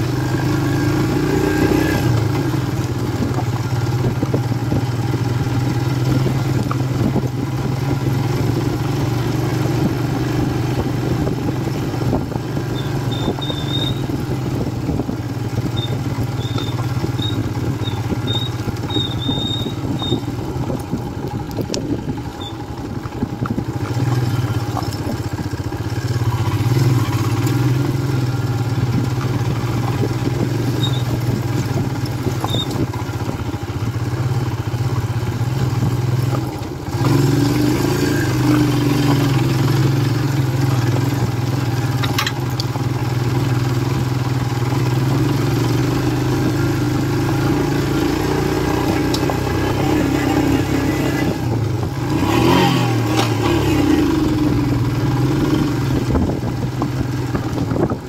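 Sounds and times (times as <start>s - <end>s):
motorcycle engine running: 0.0s - 58.0s.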